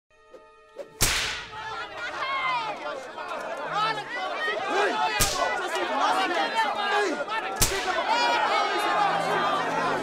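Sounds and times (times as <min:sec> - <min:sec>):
whip crack: 0:00.9 - 0:01.6, 0:05.2 - 0:05.5, 0:07.6 - 0:08.0.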